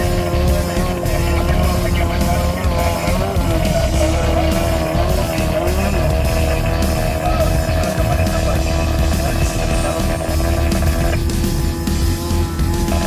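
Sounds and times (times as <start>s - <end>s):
background music: 0.0s - 13.0s
buggy engine running hard: 0.0s - 13.0s.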